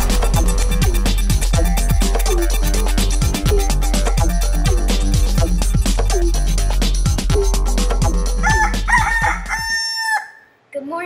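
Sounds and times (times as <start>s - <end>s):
intro music with drum beat: 0.0s - 9.7s
rooster crowing: 8.4s - 10.6s.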